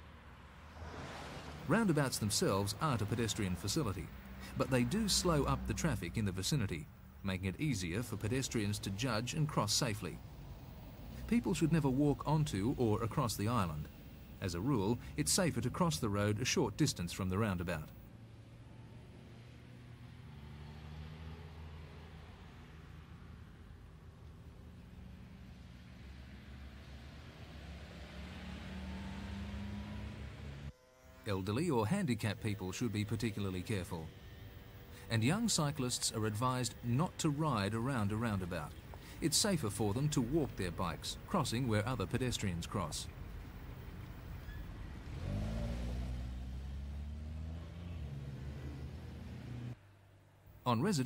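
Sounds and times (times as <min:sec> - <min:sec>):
car approaching: 0:00.0 - 0:51.0.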